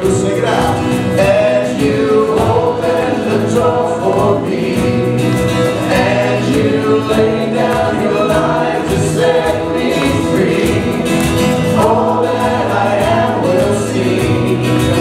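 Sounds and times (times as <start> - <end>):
acoustic guitar: 0.0 - 15.0
keyboard: 0.0 - 15.0
man singing: 0.0 - 15.0
steady drum beat: 0.0 - 15.0.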